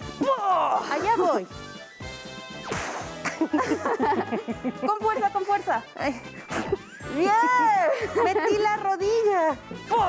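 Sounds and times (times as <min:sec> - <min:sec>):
background music: 0:00.0 - 0:10.0
woman laughing: 0:03.3 - 0:05.2, 0:06.6 - 0:08.9.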